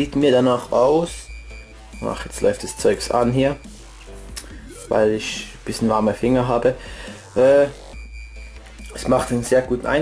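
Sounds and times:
quiet electronic music: 0.0 - 10.0.

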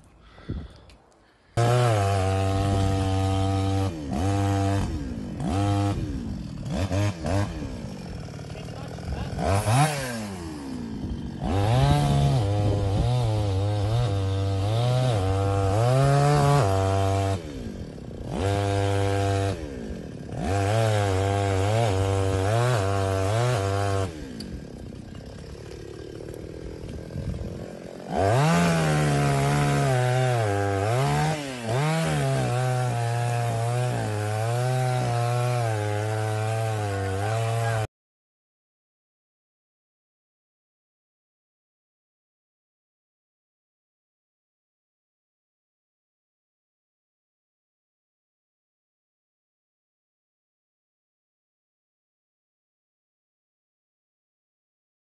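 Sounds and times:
chainsaw engine running: 1.2 - 37.9.

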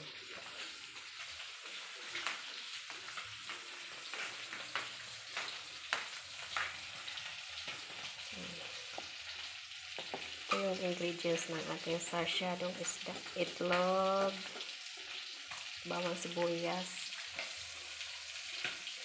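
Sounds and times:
food sizzling in hot oil: 0.0 - 19.0
oil popping and crackling: 0.0 - 19.0.

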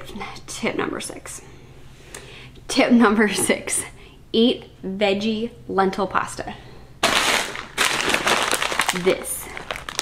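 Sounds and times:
plastic bag crinkling: 7.0 - 10.0.

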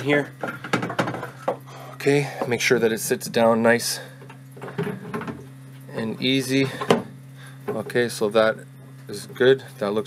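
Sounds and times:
low electrical hum: 0.0 - 10.0
plastic parts clicking and knocking: 0.4 - 1.3.

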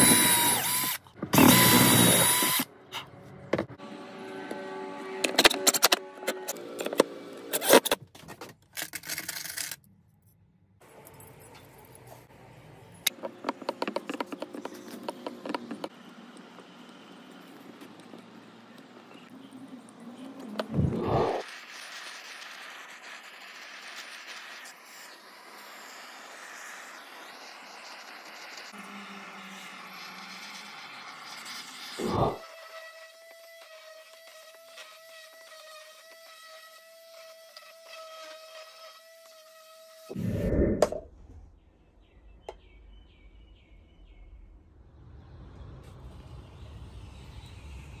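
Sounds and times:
impact driver motor whine: 0.0 - 2.7
blowtorch hissing: 20.6 - 32.4.

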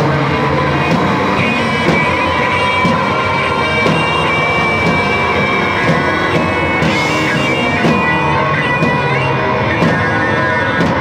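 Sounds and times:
droning electric guitars: 0.0 - 11.0
rock band playing: 0.0 - 11.0.

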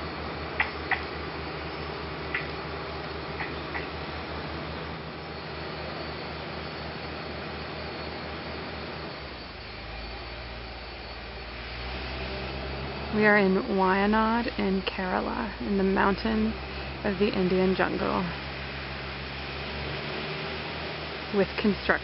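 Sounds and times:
distant construction machinery drone: 0.0 - 22.0.

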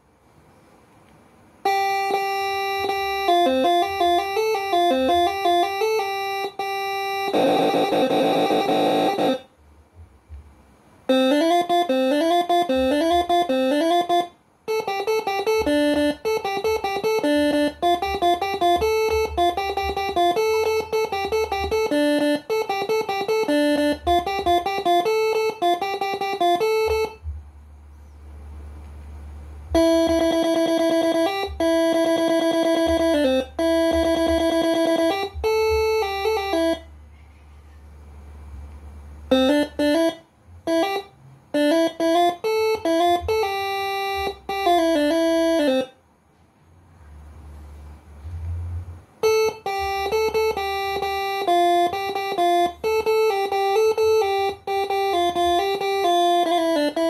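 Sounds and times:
air horn playing melody: 1.6 - 9.5, 11.1 - 27.3, 29.7 - 37.2, 39.2 - 46.0, 48.0 - 57.0.

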